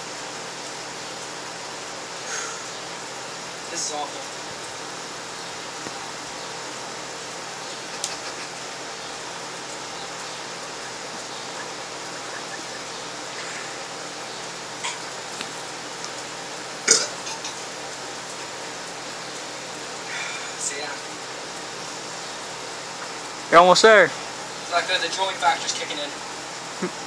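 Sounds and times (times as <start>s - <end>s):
steady outdoor hiss: 0.0s - 27.0s
man gulping: 14.8s - 15.1s, 16.8s - 17.7s
loud burp: 16.8s - 17.6s.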